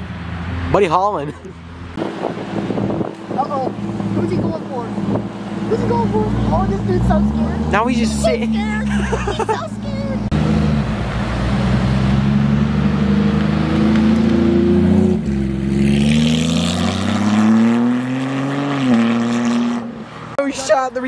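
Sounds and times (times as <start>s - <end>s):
sports car engine accelerating: 0.0s - 20.4s.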